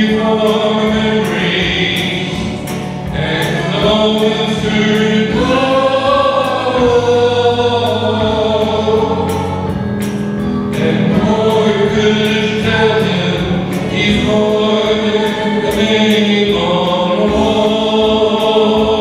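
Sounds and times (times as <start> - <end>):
congregation singing a hymn: 0.0 - 19.0
steady low notes: 0.0 - 19.0.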